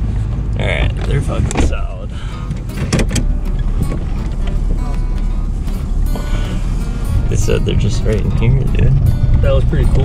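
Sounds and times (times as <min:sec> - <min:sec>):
road noise: 0:00.0 - 0:10.0
truck engine rumble: 0:00.0 - 0:10.0.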